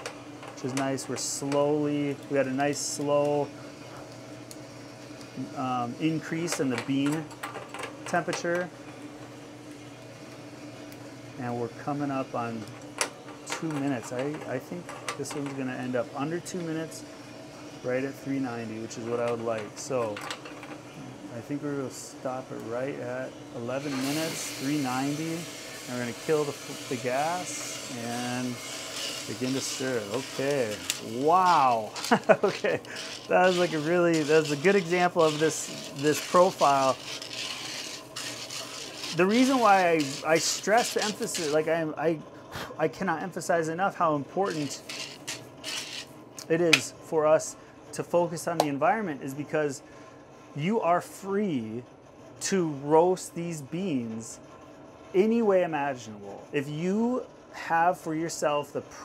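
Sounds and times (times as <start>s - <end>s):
coffee roaster hum: 0.0s - 59.0s.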